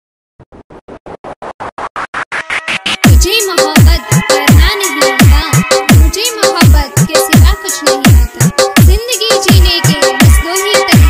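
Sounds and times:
chopped noisy electronic hits: 0.4s - 3.2s.

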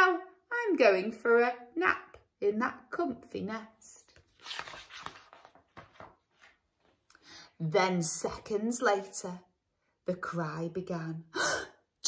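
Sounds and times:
book page rustling: 4.1s - 7.1s.

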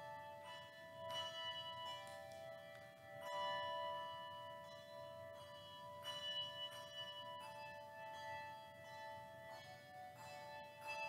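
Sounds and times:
handbell choir ringing: 0.0s - 11.0s.

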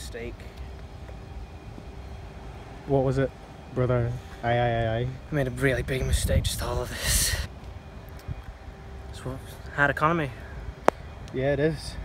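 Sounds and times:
faint steady hum: 0.0s - 12.0s
low outdoor rumble: 0.0s - 12.0s
man speaking: 2.8s - 7.5s, 11.3s - 12.0s.

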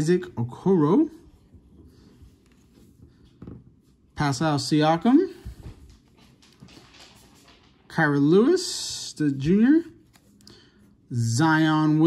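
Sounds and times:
trading cards rustling: 9.4s - 11.0s.

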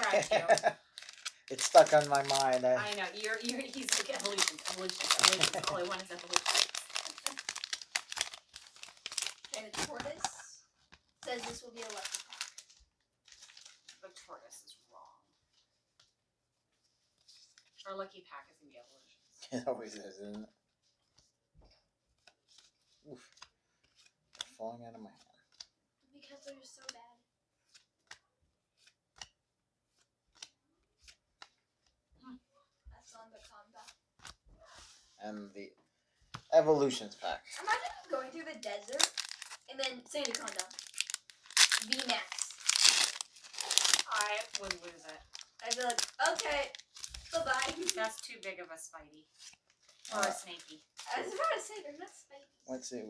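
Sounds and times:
foil wrapper crinkling: 0.0s - 10.5s, 11.1s - 14.0s, 37.6s - 48.6s, 49.3s - 51.7s
foil pack tearing open: 0.1s - 10.3s, 38.7s - 48.4s.

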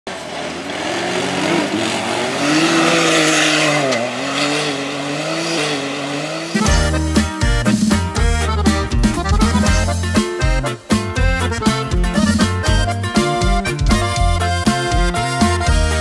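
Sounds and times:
off-road engine revving: 0.1s - 16.0s
band with accordion and bass: 4.6s - 16.0s.

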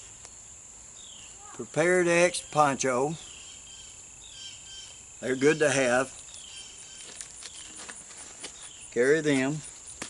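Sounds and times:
crickets chirping: 0.0s - 10.0s
man speaking: 5.2s - 6.1s, 9.0s - 9.7s.

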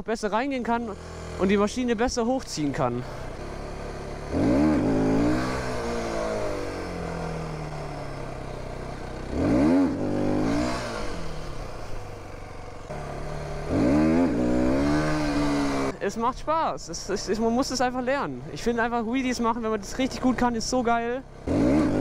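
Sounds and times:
motorcycle engine revving: 0.5s - 22.0s.

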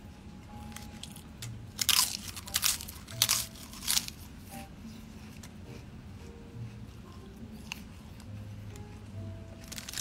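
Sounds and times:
person crunching crisp food: 0.6s - 4.4s, 9.6s - 10.0s.

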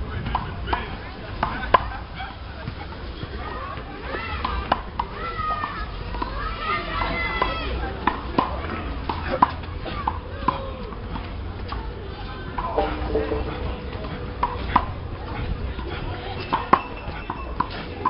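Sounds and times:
faint distant voices: 0.0s - 18.0s
low steady rumble: 12.6s - 15.3s.

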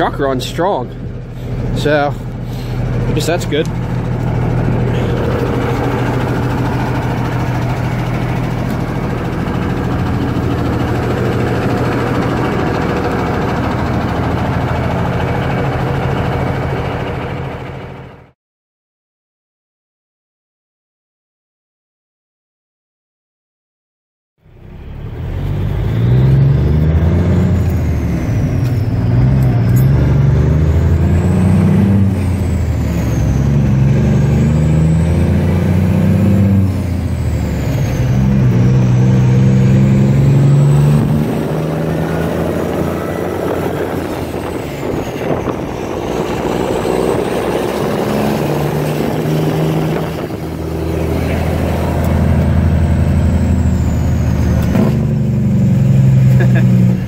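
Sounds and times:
diesel truck engine accelerating: 0.0s - 18.4s, 24.4s - 57.0s.

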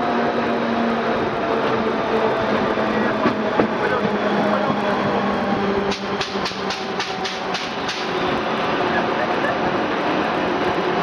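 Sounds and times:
train rumble with low hum: 0.0s - 11.0s
wheels clicking on track: 1.6s - 11.0s.

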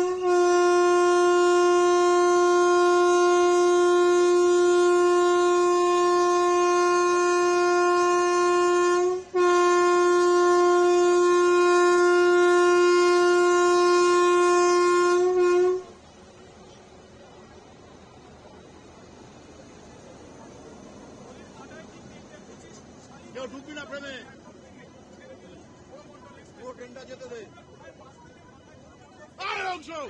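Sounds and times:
locomotive air horn blasts: 0.0s - 16.0s.

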